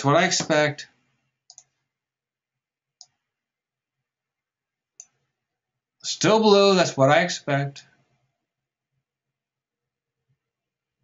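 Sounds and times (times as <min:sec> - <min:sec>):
computer mouse clicking: 0:01.5 - 0:01.8, 0:05.0 - 0:05.3.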